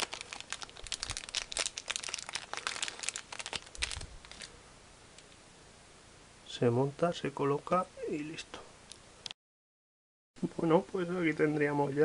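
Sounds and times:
plastic bag crinkling: 0.0s - 4.6s.

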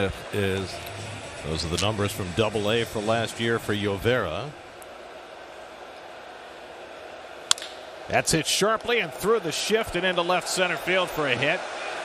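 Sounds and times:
low ballpark background noise: 0.0s - 12.0s
wooden bat cracking ball: 7.4s - 8.0s.

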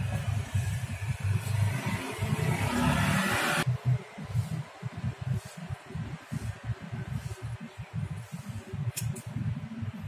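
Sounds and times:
irregular low rumble: 3.6s - 10.0s.

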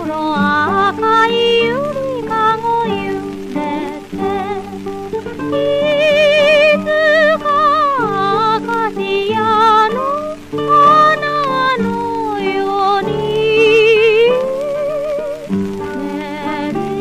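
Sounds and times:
guitar accompaniment: 0.0s - 17.0s
woman singing with vibrato: 0.0s - 17.0s.

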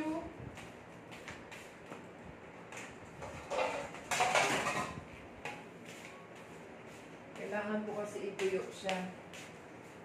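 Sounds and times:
metal tray and dishes clattering: 3.2s - 5.6s.

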